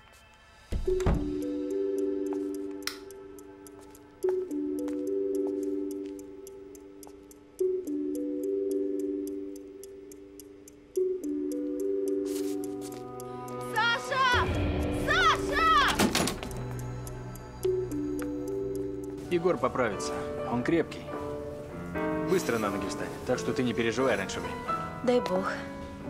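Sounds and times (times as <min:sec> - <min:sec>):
fast regular ticking: 0:01.4 - 0:19.2
tense film score chords: 0:13.0 - 0:22.3.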